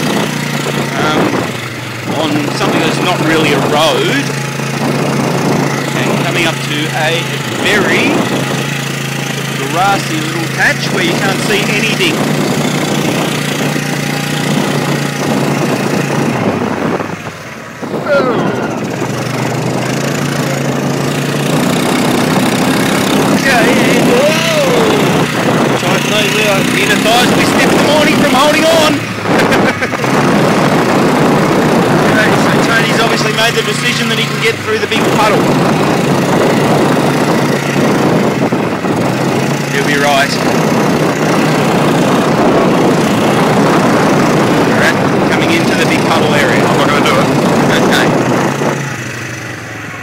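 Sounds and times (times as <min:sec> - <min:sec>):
vehicle engine running: 0:00.0 - 0:50.0
vehicle rattling: 0:00.0 - 0:50.0
wind noise: 0:00.0 - 0:50.0.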